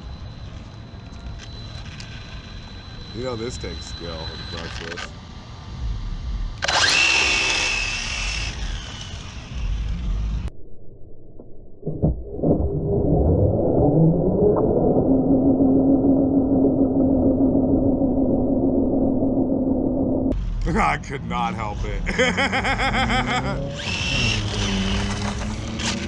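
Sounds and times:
steady drone with low hum: 0:00.0 - 0:26.0
rc car motor whining: 0:00.4 - 0:05.1, 0:06.6 - 0:10.5, 0:23.7 - 0:26.0
tyres spinning and scrubbing: 0:23.8 - 0:26.0.

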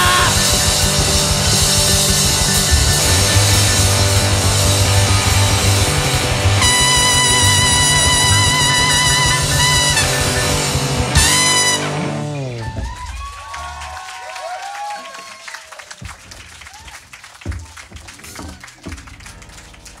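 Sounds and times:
jazz band final chord: 0:00.0 - 0:12.6
audience cheering and clapping: 0:00.0 - 0:20.0.

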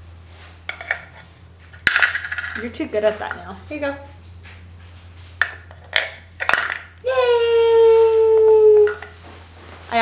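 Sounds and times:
toy pieces clacking on wooden box: 0:05.8 - 0:06.9.

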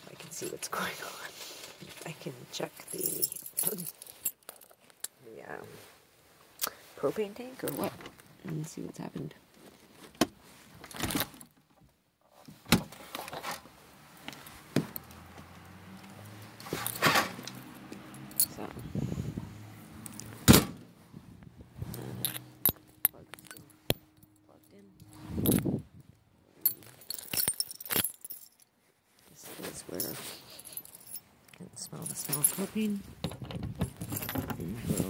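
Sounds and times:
keys jangling: 0:02.8 - 0:04.9, 0:16.6 - 0:18.8, 0:22.2 - 0:25.7, 0:26.6 - 0:28.7, 0:30.0 - 0:33.0, 0:33.7 - 0:35.0
knocks and handling thumps: 0:14.3 - 0:15.5, 0:32.0 - 0:35.0.

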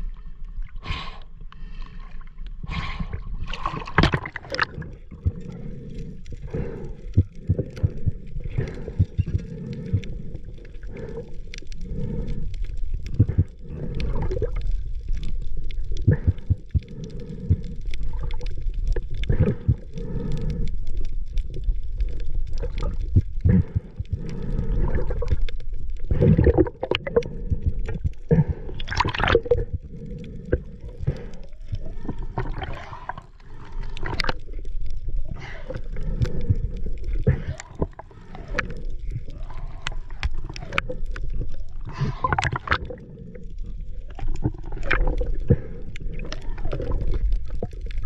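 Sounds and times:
underwater rumble of moving water: 0:00.0 - 0:48.0.

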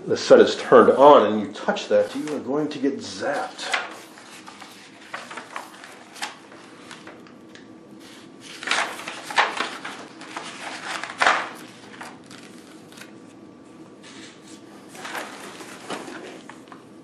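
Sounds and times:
binder pages rustling and flipping: 0:02.0 - 0:13.4, 0:14.0 - 0:16.9.

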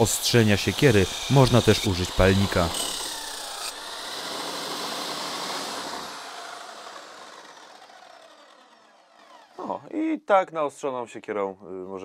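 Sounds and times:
grinder wheel grinding axe: 0:00.0 - 0:09.8
grinder winding down whine: 0:00.0 - 0:09.9.

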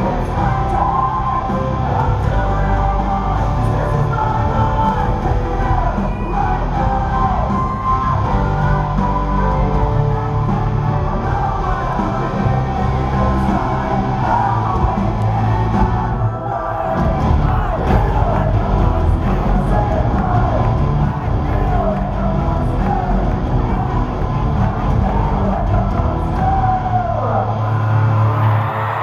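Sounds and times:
live rock band playing: 0:00.0 - 0:16.2
crowd yelling: 0:00.0 - 0:29.0.

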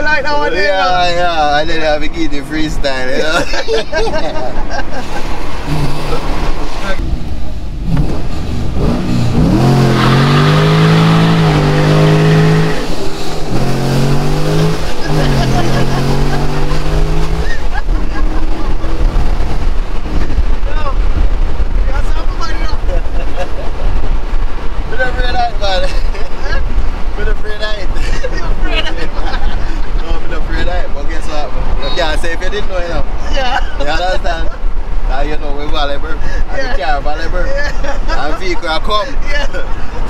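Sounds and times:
people talking: 0:00.0 - 0:06.2, 0:06.8 - 0:07.0, 0:14.8 - 0:19.2, 0:20.1 - 0:21.0, 0:21.8 - 0:24.0, 0:24.8 - 0:40.0
people laughing: 0:03.0 - 0:06.4, 0:14.7 - 0:19.2, 0:22.3 - 0:24.0, 0:25.8 - 0:26.7, 0:27.8 - 0:30.4, 0:33.2 - 0:34.6, 0:36.1 - 0:40.0
car engine accelerating: 0:04.8 - 0:33.2.

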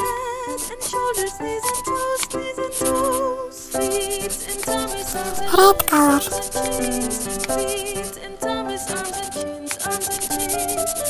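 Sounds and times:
children's song melody: 0:05.2 - 0:06.4
short gliding voice-like sound: 0:05.2 - 0:06.4.

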